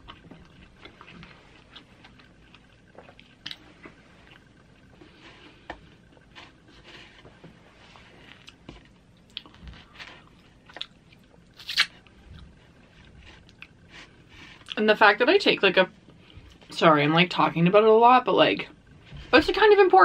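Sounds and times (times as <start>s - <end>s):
chewing: 0.0s - 7.3s, 8.2s - 14.8s
crust tearing and crackling: 11.5s - 12.1s
wet mouth clicks: 11.6s - 11.9s.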